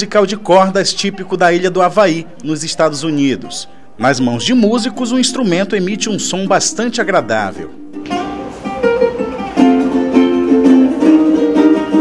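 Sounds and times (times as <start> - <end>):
ukuleles strummed: 5.3 - 12.0.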